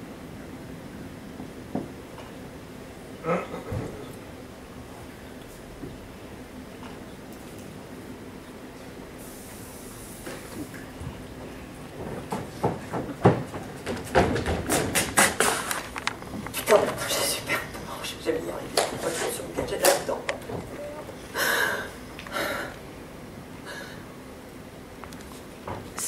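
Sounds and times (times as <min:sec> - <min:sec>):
faint steady background noise: 0:00.0 - 0:26.0.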